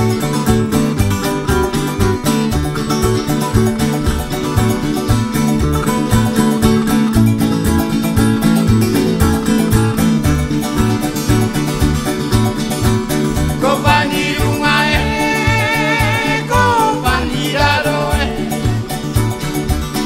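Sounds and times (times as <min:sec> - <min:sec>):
plucked and strummed guitars: 0:00.0 - 0:20.0
stepping bass line: 0:00.0 - 0:20.0.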